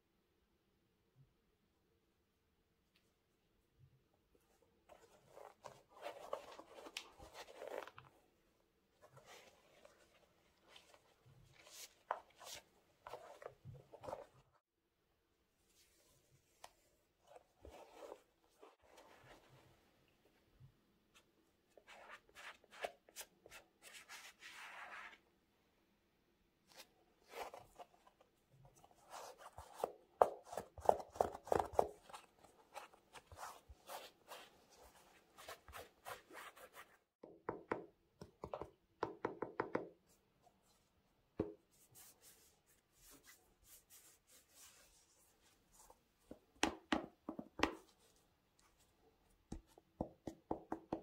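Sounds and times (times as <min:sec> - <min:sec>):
soft rubbing: 0:31.9 - 0:37.1, 0:40.1 - 0:46.5.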